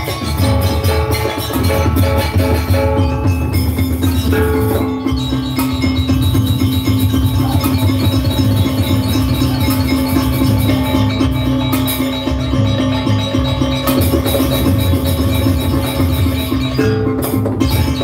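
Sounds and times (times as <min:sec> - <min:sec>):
drum struck in quick rhythm: 0:00.0 - 0:18.0
gamelan ensemble playing: 0:00.0 - 0:18.0.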